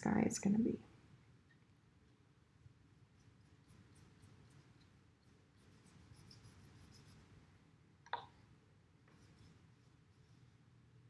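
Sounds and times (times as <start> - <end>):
low room hum: 0.0 - 11.0
wet paintbrush stroking paper: 3.0 - 7.4, 9.1 - 10.6.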